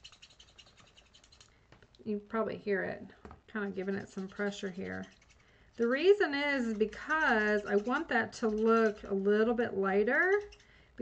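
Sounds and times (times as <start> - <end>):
marker nib scratching on card: 0.0 - 1.5, 3.6 - 10.7.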